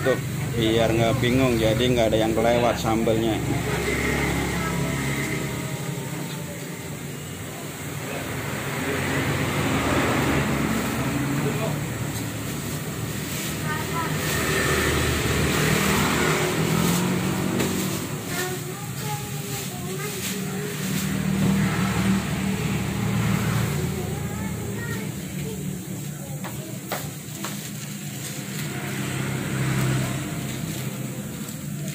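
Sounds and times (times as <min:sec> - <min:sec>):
motor vehicle passing by: 0:00.0 - 0:26.1, 0:27.4 - 0:31.9
faint voices: 0:00.0 - 0:31.9.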